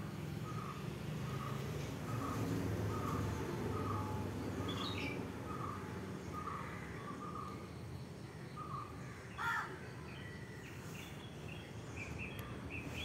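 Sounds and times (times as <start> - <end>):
birds calling: 0.0 - 13.0.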